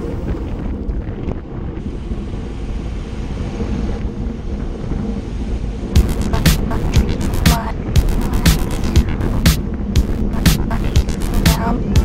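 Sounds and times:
background music: 0.0 - 0.6, 6.0 - 12.0
wind rumbling on microphone: 0.0 - 12.0
sharp beat: 6.0 - 12.0.

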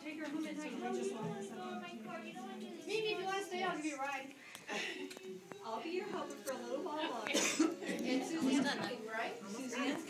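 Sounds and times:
indistinct talking: 0.0 - 10.0
person coughing: 7.3 - 7.9.

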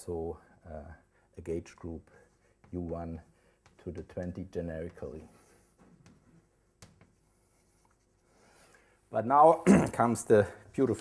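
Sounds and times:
chalk writing on blackboard: 2.0 - 8.7
chalk tapping on board: 2.1 - 8.2.

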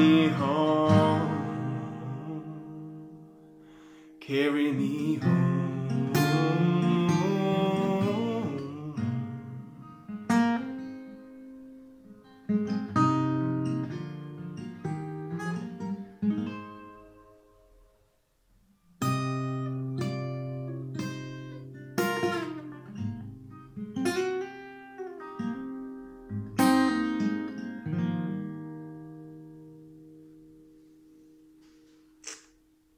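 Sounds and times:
acoustic guitar playing: 0.0 - 18.1, 18.7 - 32.9.

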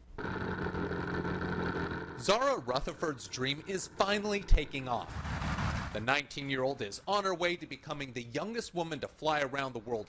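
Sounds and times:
propeller plane engine running: 0.0 - 6.0.

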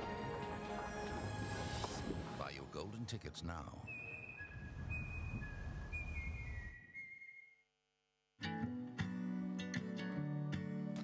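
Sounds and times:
person whistling a tune: 3.9 - 7.6.

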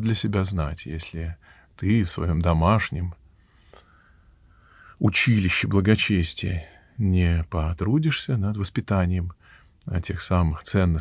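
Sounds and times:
man speaking: 0.0 - 3.2, 5.0 - 11.0
soft in-breath: 1.4 - 1.8, 3.3 - 5.0, 9.4 - 9.8.

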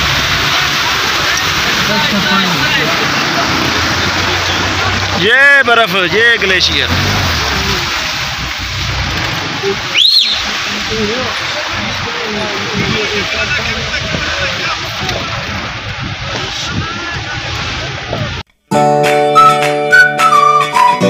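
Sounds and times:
meltwater rushing: 0.0 - 18.4
vehicle engine and road rumble: 0.0 - 18.5
faint voices: 9.6 - 18.4
short rising whistle: 9.9 - 10.4, 19.3 - 21.0.

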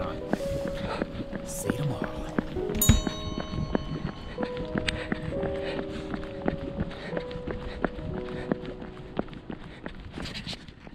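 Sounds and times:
background music held notes: 0.0 - 10.2
running footsteps: 0.0 - 10.9.

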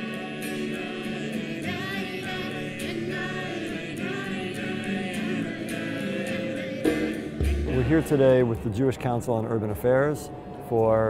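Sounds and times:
group singing in unison: 0.0 - 8.0
acoustic guitar: 0.0 - 9.2.

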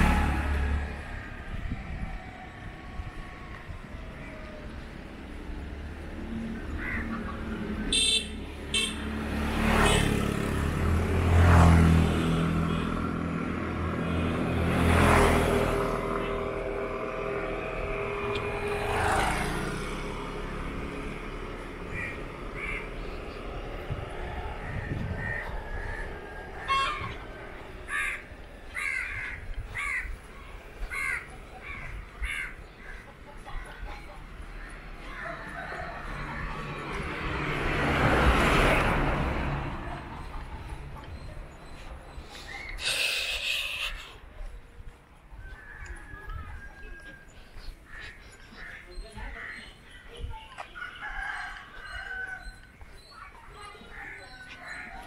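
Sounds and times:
motorbikes passing: 0.0 - 55.0
vehicle approaching: 0.0 - 55.0.

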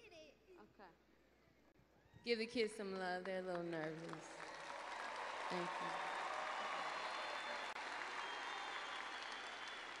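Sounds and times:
large audience applauding: 3.8 - 10.0.

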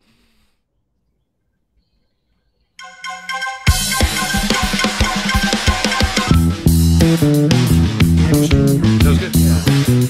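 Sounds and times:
rock band playing: 2.8 - 10.0.

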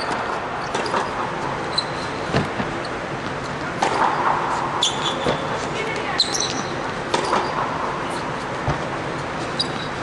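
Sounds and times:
shoes squeaking on court: 0.0 - 10.0
racket striking ball: 2.3 - 5.5, 7.0 - 8.0.

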